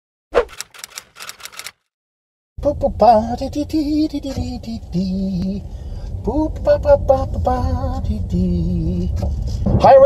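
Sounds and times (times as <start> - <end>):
typewriter key clatter: 0.5 - 1.8.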